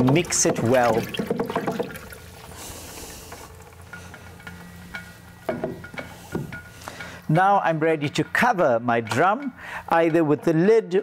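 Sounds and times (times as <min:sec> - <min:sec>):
liquid sloshing in plastic drum: 0:00.0 - 0:03.8
stick stirring liquid: 0:00.0 - 0:11.0.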